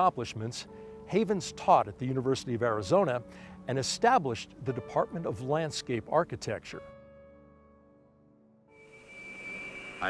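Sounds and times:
jet engine high whine: 0:08.8 - 0:10.0.

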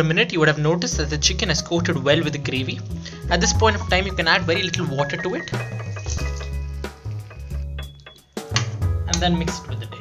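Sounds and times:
background music with bass line: 0:00.9 - 0:10.0.

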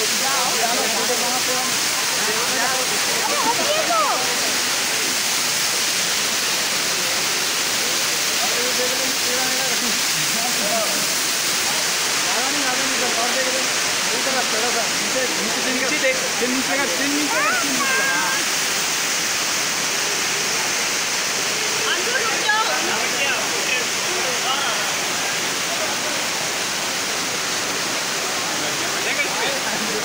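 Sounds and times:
waterfall rushing: 0:00.0 - 0:30.0.

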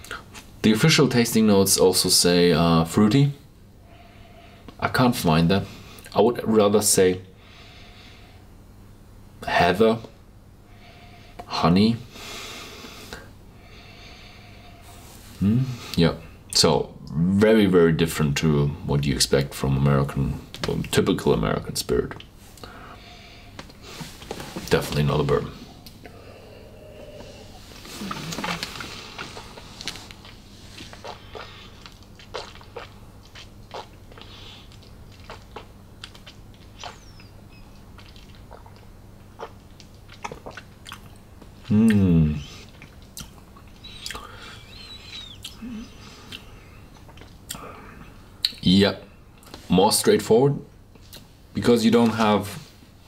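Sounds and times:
low electrical hum: 0:00.0 - 0:53.0
man breathing through nose: 0:12.1 - 0:15.2
person sipping and swishing liquid: 0:25.6 - 0:41.0
lip smacks and tongue clicks: 0:28.1 - 0:42.0, 0:42.6 - 0:45.6, 0:46.3 - 0:47.6, 0:51.0 - 0:51.3.

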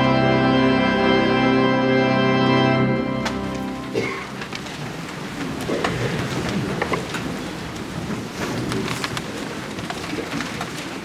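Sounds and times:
congregation rustling and shuffling: 0:00.0 - 0:11.0.

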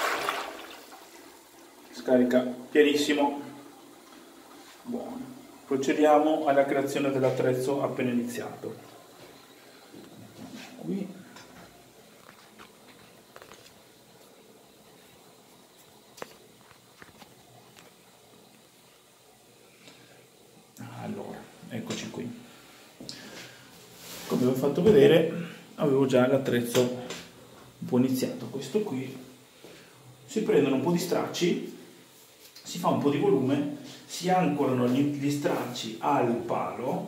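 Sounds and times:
toilet flushing: 0:00.0 - 0:32.2.

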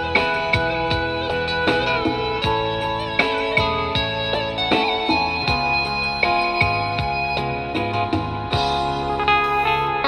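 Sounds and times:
instrumental guitar music: 0:00.0 - 0:10.0.

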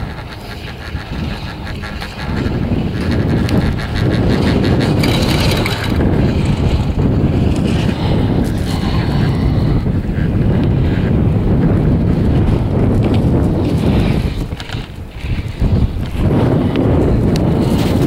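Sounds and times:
wind rushing over microphone: 0:00.0 - 0:18.0.

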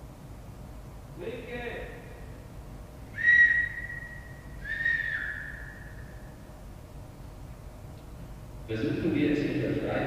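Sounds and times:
high whistle tones: 0:03.1 - 0:06.2.

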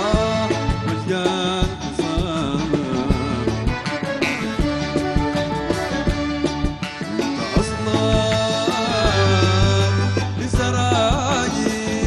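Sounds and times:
piano accordion melody: 0:00.0 - 0:12.0
steady drum beats: 0:00.0 - 0:12.0.

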